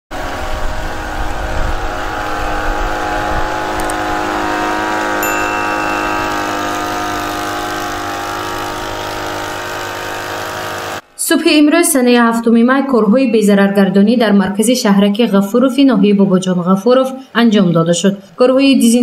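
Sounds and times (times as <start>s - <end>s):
small sprayer engine running: 0.2s - 11.0s.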